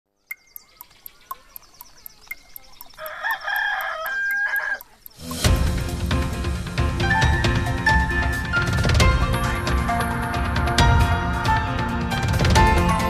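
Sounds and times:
clock ticking: 0.2s - 5.9s
rooster crowing: 3.0s - 5.0s.

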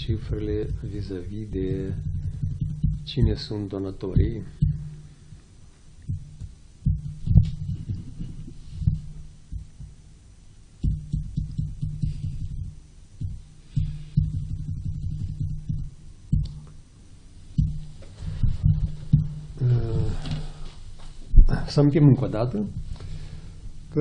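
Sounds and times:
muffled thumps and knocks: 0.0s - 10.0s, 10.8s - 16.8s, 17.5s - 21.6s, 22.2s - 23.8s
steady low hum: 0.0s - 24.0s.

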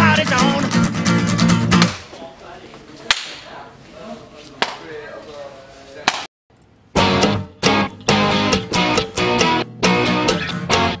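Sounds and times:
sharp smacks: 1.8s - 2.1s, 6.1s - 6.3s.

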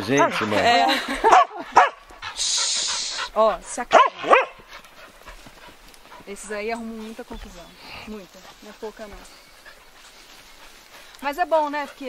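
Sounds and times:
dog yipping: 3.9s - 4.6s.

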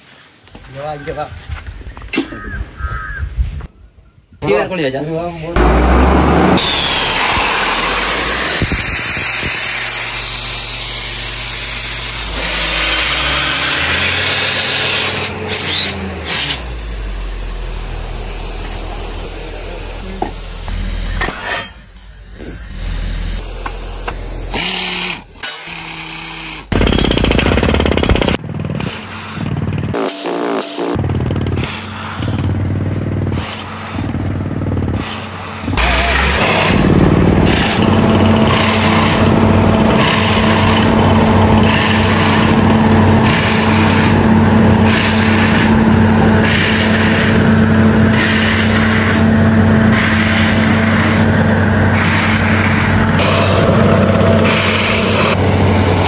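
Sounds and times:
drilling rig engine running: 5.6s - 56.0s.

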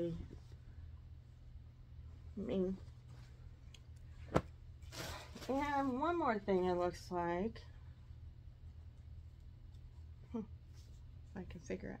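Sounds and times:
low steady hum: 0.0s - 12.0s
soft rustling of garments and bag: 0.0s - 12.0s.

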